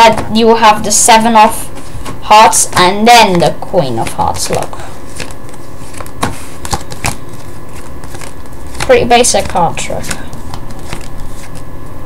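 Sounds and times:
steady low hum: 0.0 - 12.0
playing cards snapping: 4.0 - 11.7.

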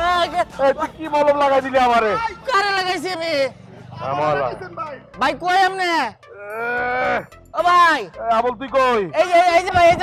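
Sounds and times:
man calling out in a wail: 1.8 - 3.4, 5.7 - 8.1.

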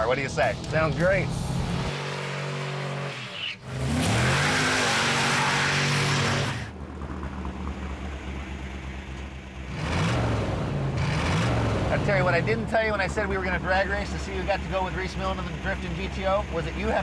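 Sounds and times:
car engine revving: 0.4 - 17.0.

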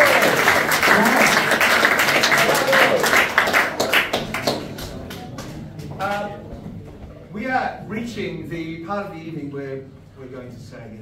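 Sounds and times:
audience applauding: 0.0 - 6.3.

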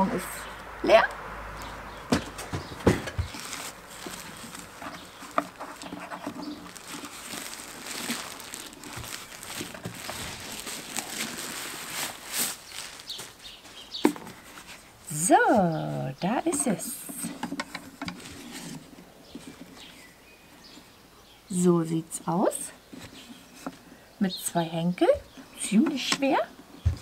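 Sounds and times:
cardboard box knocking: 2.1 - 3.5
plastic bag crinkling: 3.1 - 14.9.

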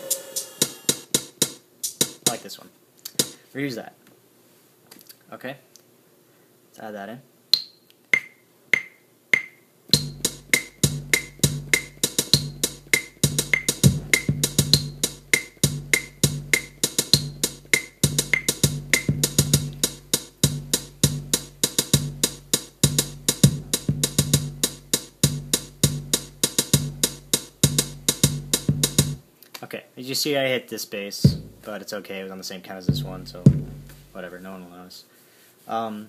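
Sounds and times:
hi-hat: 0.0 - 2.5, 9.9 - 29.2
metronome clicks: 7.5 - 20.9
looping bass drum pattern: 8.2 - 29.2, 31.2 - 31.7, 32.8 - 34.3.

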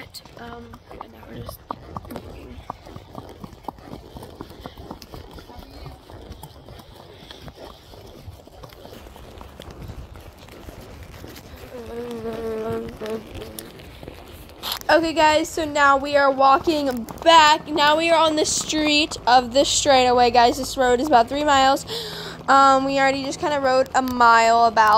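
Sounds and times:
horse hooves clip-clopping: 0.0 - 24.9
low outdoor rumble: 0.0 - 24.9.

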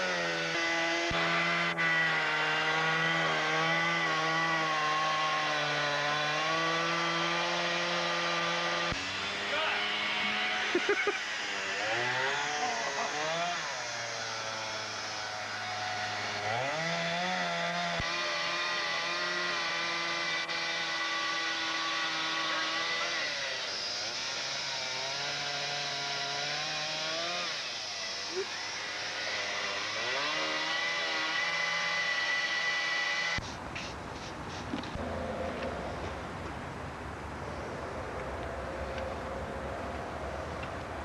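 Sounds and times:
chainsaw engine revving and idling: 0.0 - 36.7.

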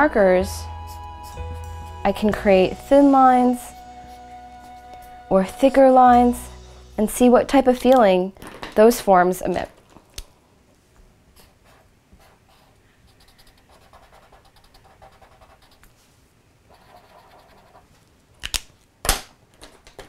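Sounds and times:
marker scratching on paper: 11.4 - 15.8, 16.7 - 17.9.

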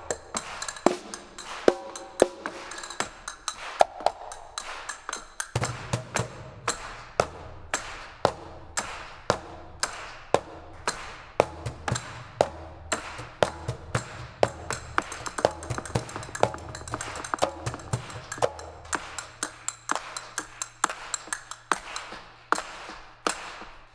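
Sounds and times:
conga hand-drum strokes: 0.0 - 22.8
low drum: 10.4 - 19.7
sharp wooden clicks and taps: 14.7 - 22.7.

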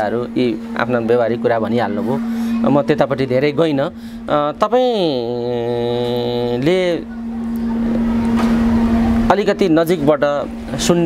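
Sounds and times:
steady low hum: 0.0 - 11.0
man's drawn-out hesitation vowel: 3.9 - 7.3.

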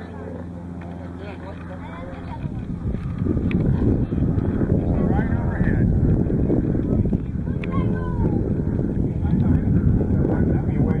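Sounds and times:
people talking: 0.0 - 6.0, 7.0 - 11.0
wind on microphone: 1.8 - 11.0.

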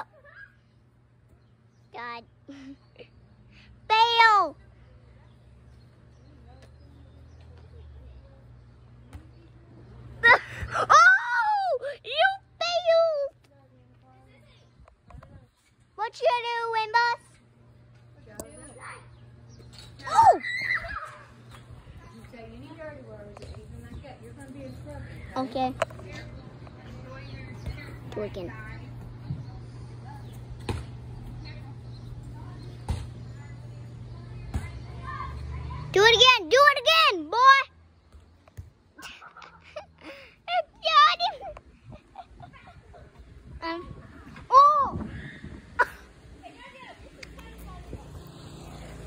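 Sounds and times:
child yelling: 20.0 - 21.3.

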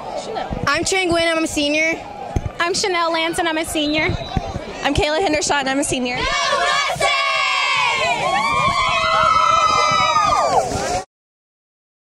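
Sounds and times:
girls screaming and cheering: 6.2 - 11.0.

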